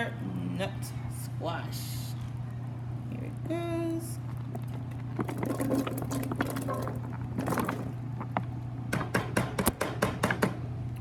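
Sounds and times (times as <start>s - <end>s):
steady low hum: 0.0s - 11.0s
food plopping into liquid: 4.2s - 8.6s.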